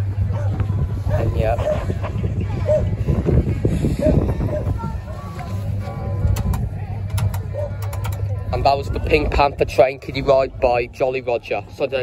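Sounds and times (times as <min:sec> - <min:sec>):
distant voices: 0:00.0 - 0:12.0
faint background music: 0:00.0 - 0:12.0
steady low rumble: 0:00.0 - 0:12.0.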